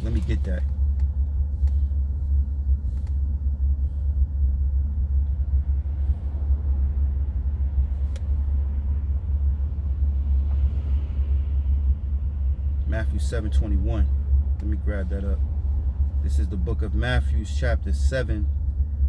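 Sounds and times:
low rumble inside car cabin: 0.0s - 19.0s.

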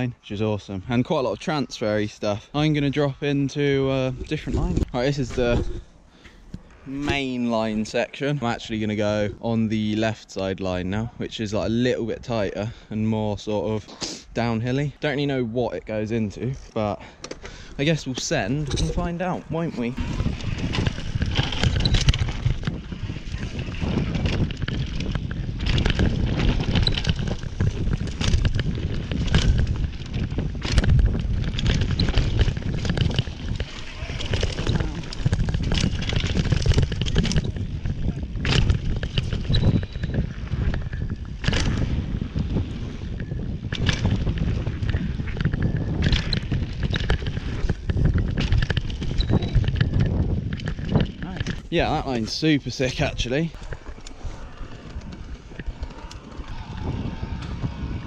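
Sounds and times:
wind buffeting microphone: 15.6s - 58.0s
tyres rumbling on dirt: 17.5s - 58.0s
bike knocking and clattering: 20.1s - 52.4s.

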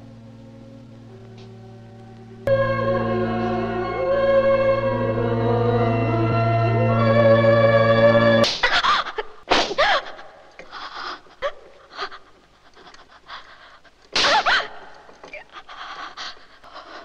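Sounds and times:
panting breaths and gasps: 10.6s - 14.1s, 15.1s - 17.0s.

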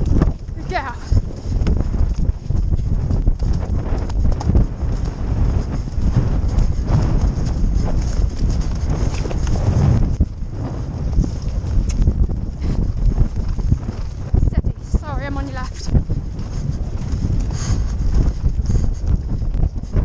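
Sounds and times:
horse hoofbeats galloping on grass: 0.0s - 20.0s
other horses galloping alongside: 0.0s - 20.0s.

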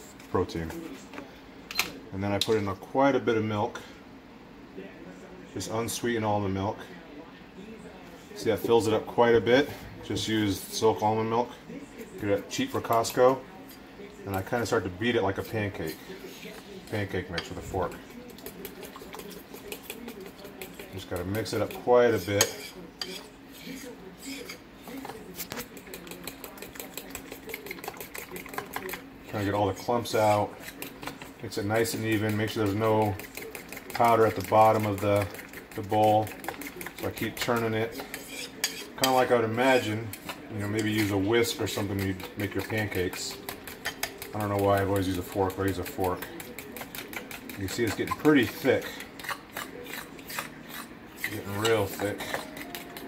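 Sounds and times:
fork beating batter in bowl: 12.0s - 53.0s
fork clicking against bowl: 25.5s - 29.0s, 41.7s - 48.2s, 49.2s - 51.3s, 52.0s - 53.0s.

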